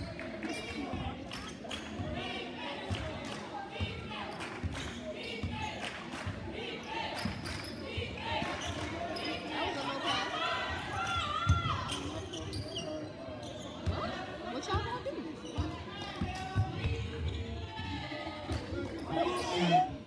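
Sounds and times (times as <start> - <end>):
echoing crowd chatter: 0.0 - 20.0.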